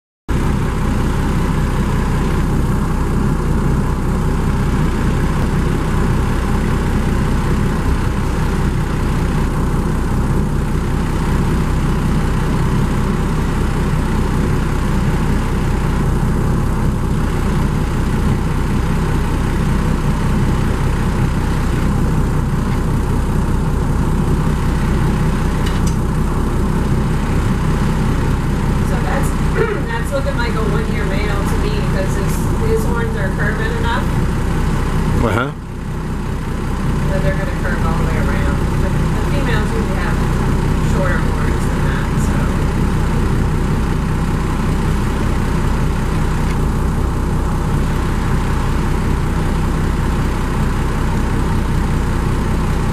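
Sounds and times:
motorboat engine running: 0:00.3 - 0:52.9.

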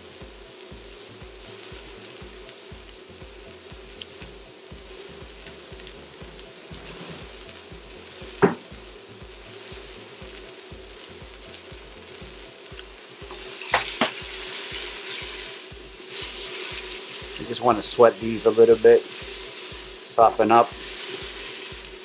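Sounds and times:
onions sizzling in oil: 0:00.0 - 0:22.0
sharp knock: 0:08.4 - 0:08.8.

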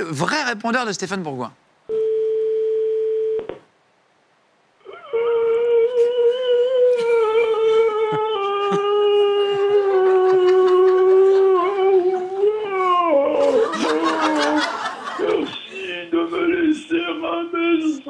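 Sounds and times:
phone ringback beep: 0:01.9 - 0:03.5
howl-like cry: 0:04.8 - 0:14.8.

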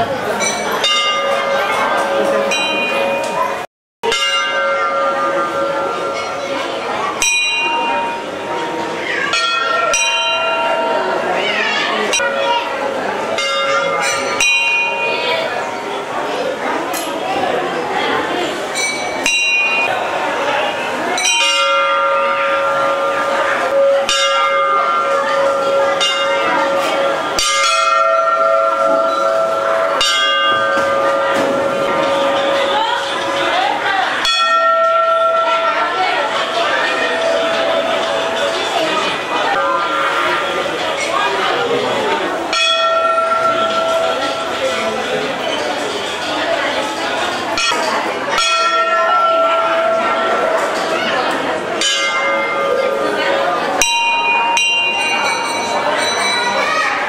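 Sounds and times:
crowd murmur: 0:00.0 - 0:57.0
temple bells ringing: 0:00.0 - 0:57.0.

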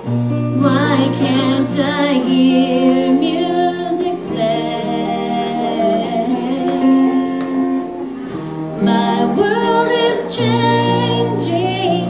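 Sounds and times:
acoustic guitar strumming: 0:00.0 - 0:12.0
electric guitar playing: 0:00.0 - 0:12.0.

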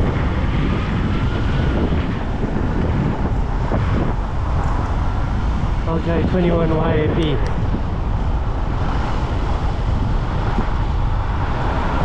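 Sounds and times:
road traffic: 0:00.0 - 0:12.0
wind rush on microphone: 0:00.0 - 0:12.0.

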